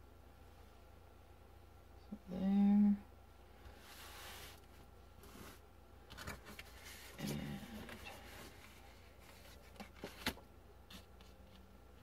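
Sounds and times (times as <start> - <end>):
cards rustling and tapping: 6.1 - 11.7
person humming: 7.2 - 8.1.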